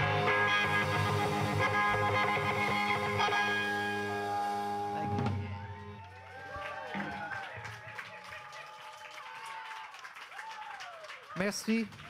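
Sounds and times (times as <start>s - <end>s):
live band with ringing guitar: 0.0s - 6.0s.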